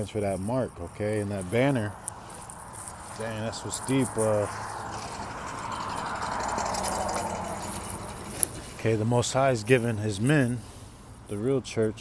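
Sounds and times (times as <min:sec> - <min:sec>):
steady low rumble: 0:00.0 - 0:10.7
passing vehicle rushing: 0:00.6 - 0:11.3.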